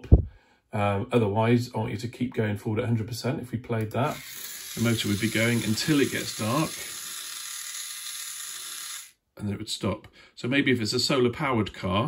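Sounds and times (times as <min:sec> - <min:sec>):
small geared motor running: 0:04.1 - 0:09.1.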